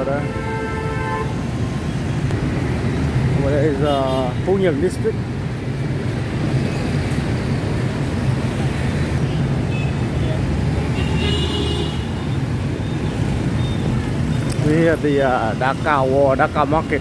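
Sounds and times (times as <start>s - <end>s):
motorbikes and cars passing: 0.0s - 17.0s.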